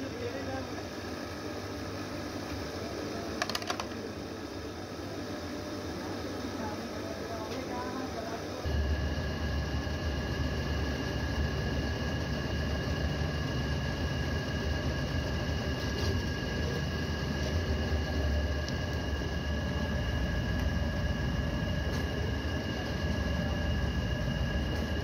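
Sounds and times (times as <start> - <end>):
machine motor humming and hissing: 0.0 - 25.0.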